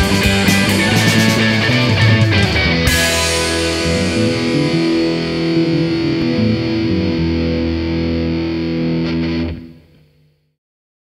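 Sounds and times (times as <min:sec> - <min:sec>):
bass guitar: 0:00.0 - 0:10.5
distorted electric guitar chords: 0:00.0 - 0:10.6.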